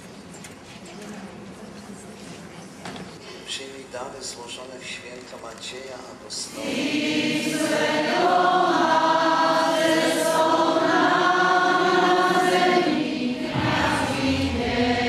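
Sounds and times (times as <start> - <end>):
choir and congregation singing hymn: 6.5 - 15.0.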